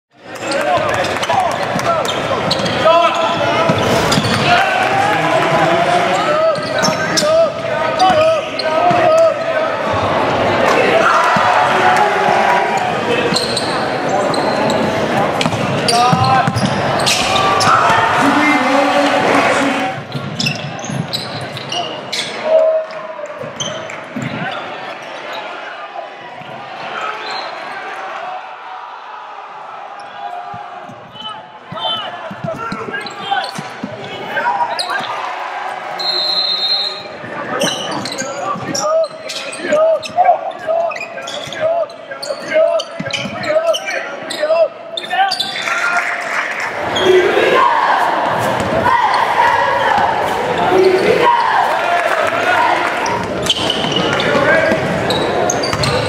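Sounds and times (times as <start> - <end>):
voices of players and spectators: 0.1 - 56.0
shoe squeaks: 2.0 - 4.5, 13.3 - 17.8, 20.1 - 22.5, 27.0 - 27.6, 31.1 - 33.8, 34.6 - 35.1, 36.0 - 45.6, 53.0 - 56.0
basketball bouncing on wooden floor: 55.7 - 56.0.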